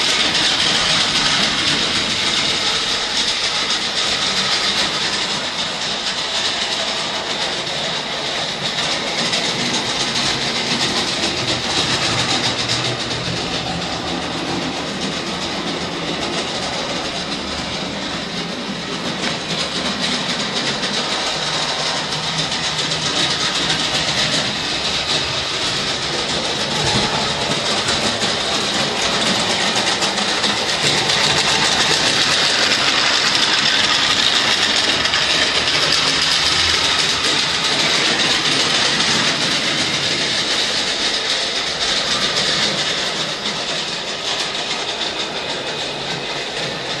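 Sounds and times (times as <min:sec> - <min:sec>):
wheels clattering over track: 0:00.0 - 0:47.0.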